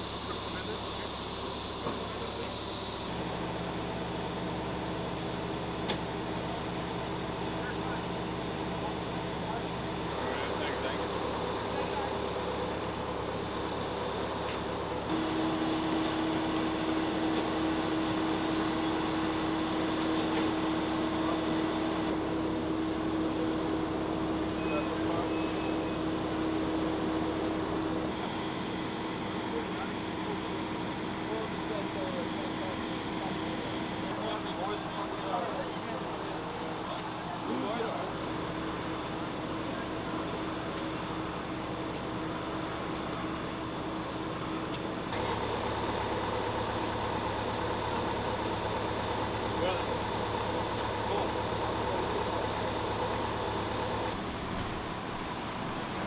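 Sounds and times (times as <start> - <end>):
machinery hum: 0.0 - 56.0
indistinct talk: 6.2 - 15.1, 29.4 - 45.2, 47.7 - 54.2.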